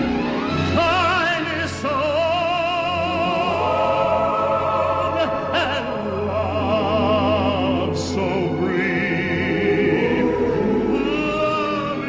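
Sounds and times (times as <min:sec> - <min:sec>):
orchestral music: 0:00.0 - 0:12.0
wordless choir voices: 0:00.1 - 0:12.0.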